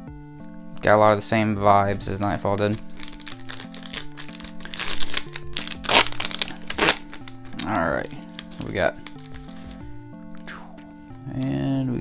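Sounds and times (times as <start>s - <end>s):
plastic wrapper crackling: 1.9s - 9.8s.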